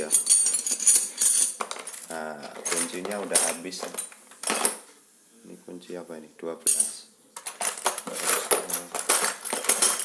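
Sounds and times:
metal tools clinking in toolbox: 0.0s - 4.8s, 6.7s - 10.0s.

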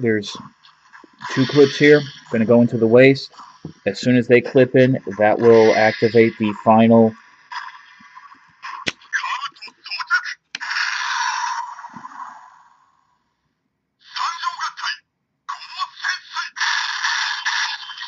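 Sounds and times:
toy voice lines and sound effects: 1.2s - 3.2s, 4.0s - 12.7s, 14.0s - 18.0s.

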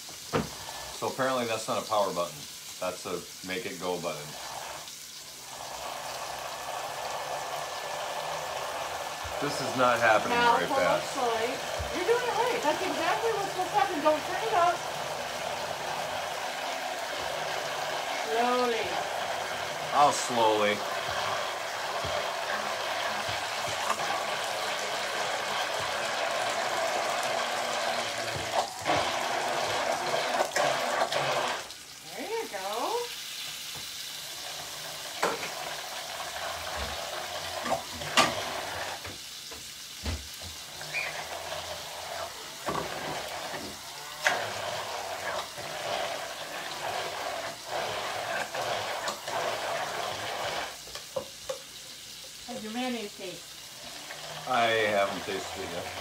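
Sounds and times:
immersion blender running: 0.0s - 2.2s, 2.8s - 33.1s, 33.7s - 51.3s, 52.8s - 56.0s
grill sizzling: 0.0s - 56.0s.

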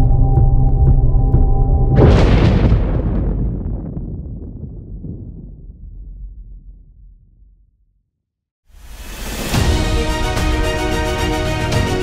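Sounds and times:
deep boom rumbling: 0.0s - 7.9s.

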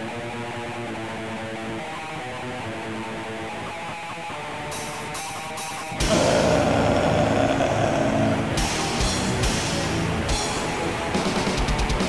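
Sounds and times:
drums: 4.8s - 12.0s
death doom metal band playing: 5.9s - 10.6s
distorted guitars: 5.9s - 10.9s.

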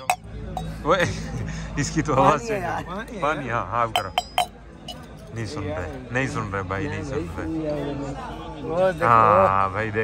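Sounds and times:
metal tumbler knocking on marble: 4.0s - 5.0s.

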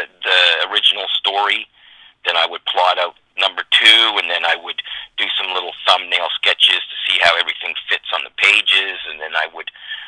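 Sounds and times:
person talking over telephone: 0.0s - 10.0s.

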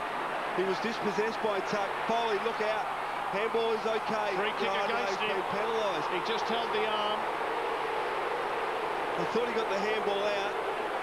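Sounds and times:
stadium crowd hubbub: 0.0s - 11.0s.

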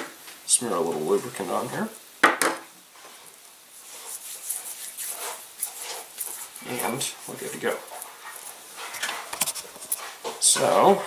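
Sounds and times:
fingers rubbing grease: 3.8s - 10.0s.

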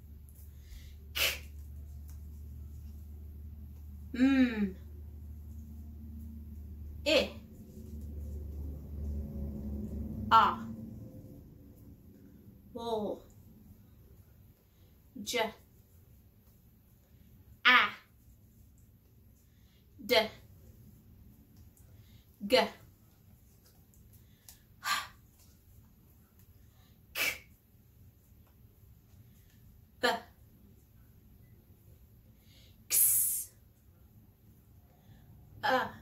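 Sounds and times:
woman voicing a vowel sound: 7.1s - 7.4s, 10.3s - 10.7s, 17.6s - 18.1s, 22.4s - 22.8s, 35.6s - 36.0s.

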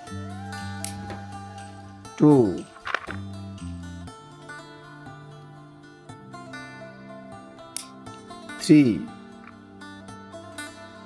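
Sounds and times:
soft plucked-string music: 0.0s - 11.0s.

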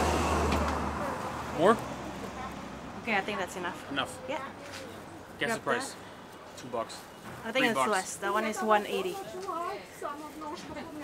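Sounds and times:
motor vehicle rumble: 0.0s - 5.4s.

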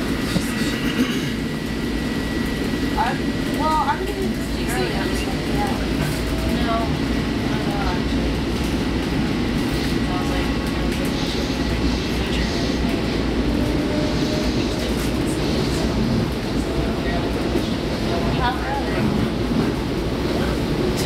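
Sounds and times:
faint passenger voices: 0.0s - 21.0s
train wheels rumbling on rail: 0.0s - 21.0s.

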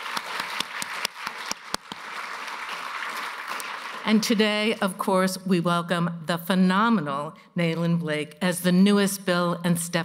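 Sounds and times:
audience applause: 0.0s - 4.2s.

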